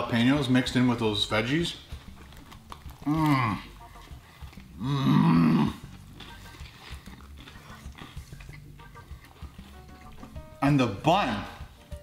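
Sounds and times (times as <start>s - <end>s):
people chewing: 1.8s - 10.6s.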